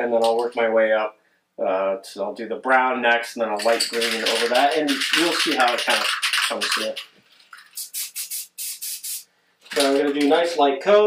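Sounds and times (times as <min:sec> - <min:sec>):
aerosol spray can hissing: 0:06.1 - 0:09.3.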